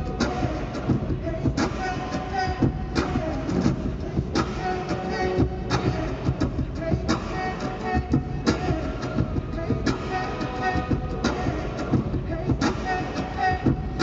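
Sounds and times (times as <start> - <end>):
beatboxing percussive hits: 0.0 - 14.0.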